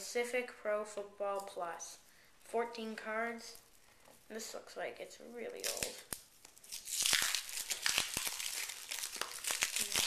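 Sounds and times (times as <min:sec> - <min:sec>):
foil wrapper tearing and crinkling: 0:05.6 - 0:10.0.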